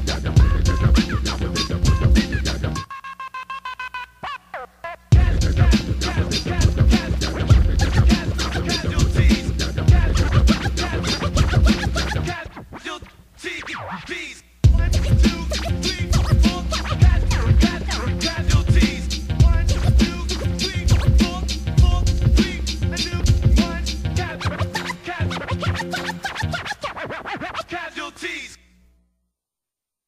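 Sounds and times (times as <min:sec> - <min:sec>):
hip hop beat: 0:00.0 - 0:27.9
turntable scratching: 0:00.0 - 0:28.4.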